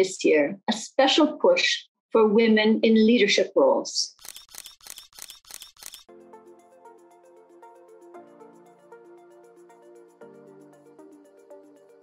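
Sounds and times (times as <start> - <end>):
sharp clicks: 4.2 - 6.1.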